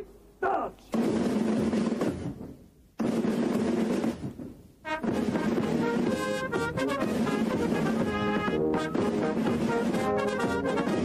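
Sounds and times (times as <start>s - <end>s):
snare drum rolls: 0.9s - 11.0s.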